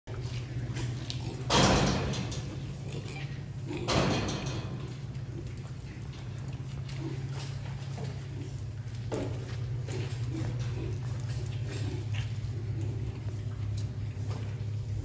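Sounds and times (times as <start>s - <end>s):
steady low hum: 0.1s - 15.0s.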